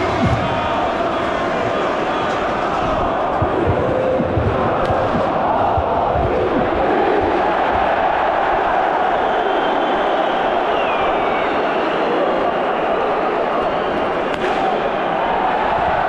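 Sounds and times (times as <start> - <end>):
crowd chanting and shouting: 0.0 - 16.0.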